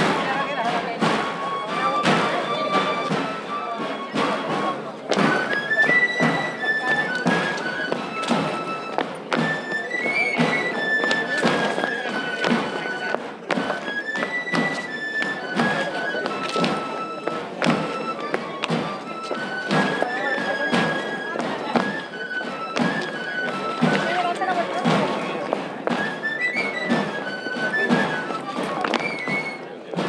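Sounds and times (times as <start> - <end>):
steady drum strokes: 0.0 - 30.0.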